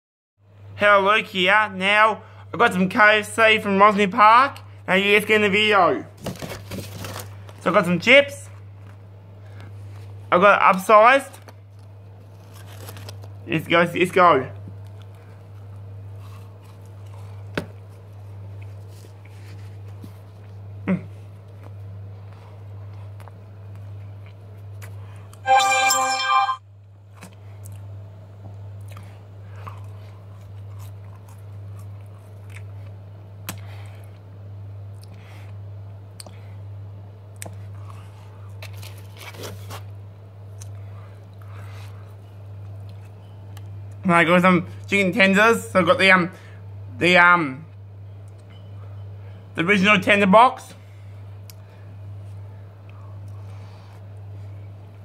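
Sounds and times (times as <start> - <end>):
man chewing chips: 14.8 - 25.4, 28.8 - 34.2, 37.3 - 44.0
person chewing crunchy food: 28.8 - 34.2.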